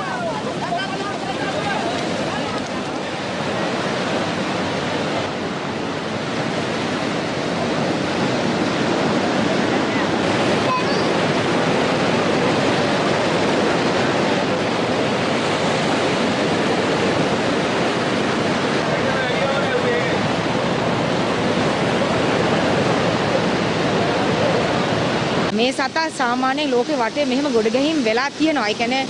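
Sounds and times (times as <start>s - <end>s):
surf breaking in shallow water: 0.0s - 29.0s.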